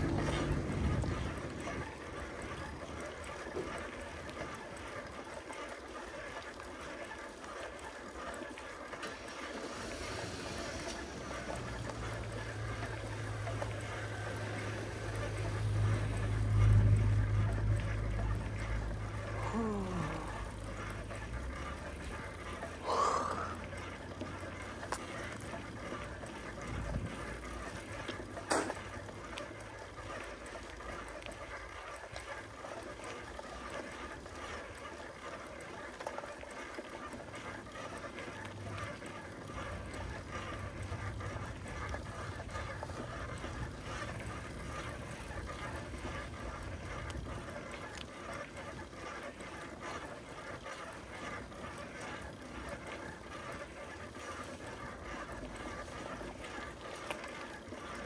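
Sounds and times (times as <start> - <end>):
bicycle tyres rolling on pavement: 0.0 - 58.0.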